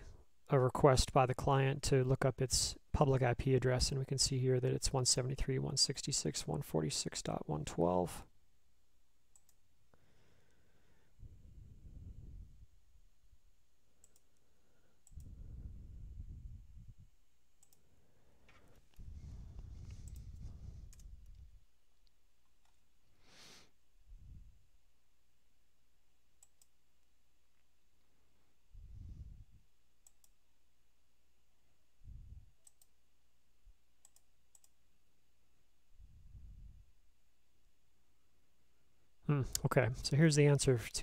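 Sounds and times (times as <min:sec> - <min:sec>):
computer mouse clicks: 0:09.3 - 0:09.6, 0:14.0 - 0:15.4, 0:17.6 - 0:22.8, 0:26.4 - 0:26.8, 0:30.0 - 0:30.4, 0:32.6 - 0:33.0, 0:34.0 - 0:34.8.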